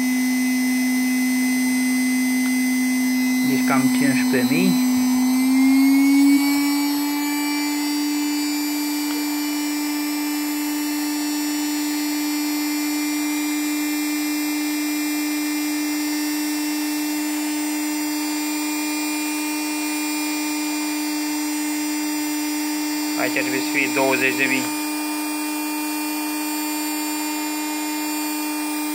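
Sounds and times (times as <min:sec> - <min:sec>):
electric rotary tool humming: 0:00.0 - 0:28.9.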